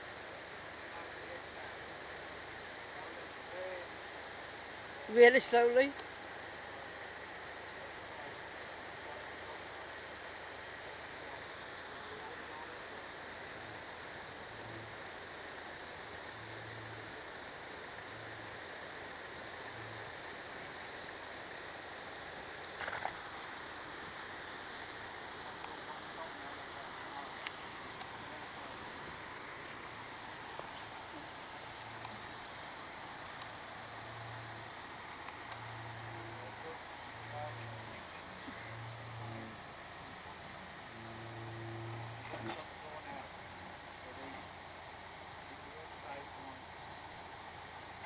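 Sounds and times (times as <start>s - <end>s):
steady outdoor hiss: 0.0s - 48.0s.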